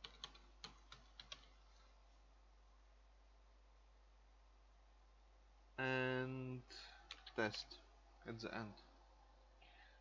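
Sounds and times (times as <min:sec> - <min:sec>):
computer keyboard typing: 0:00.0 - 0:01.6.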